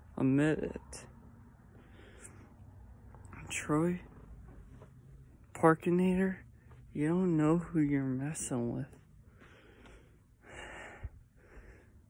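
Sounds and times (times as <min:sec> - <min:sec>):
man breathing into microphone: 0:09.2 - 0:12.0.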